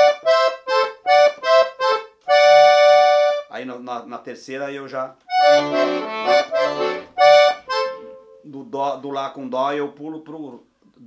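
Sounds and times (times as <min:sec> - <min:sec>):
accordion playing short notes: 0:00.0 - 0:03.5, 0:05.3 - 0:08.5.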